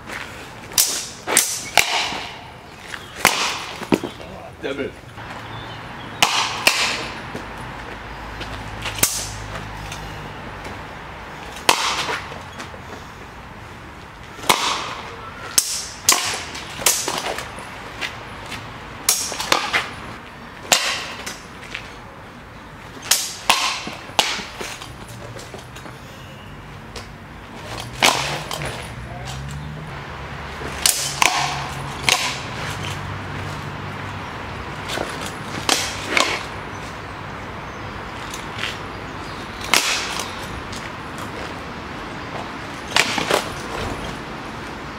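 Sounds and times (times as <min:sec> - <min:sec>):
swords and bucklers clashing: 0:00.7 - 0:02.4, 0:08.8 - 0:10.1, 0:14.4 - 0:17.6, 0:19.1 - 0:20.0, 0:27.6 - 0:29.5, 0:30.7 - 0:33.1, 0:34.8 - 0:36.5, 0:39.6 - 0:40.5.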